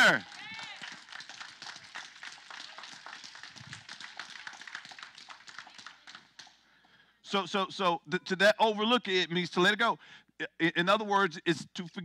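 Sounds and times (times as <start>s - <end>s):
congregation clapping: 0.0s - 7.0s.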